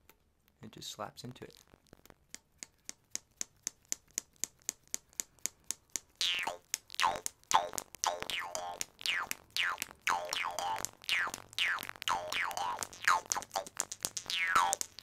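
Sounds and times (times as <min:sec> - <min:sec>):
jaw harp plucked: 0:06.2 - 0:15.0.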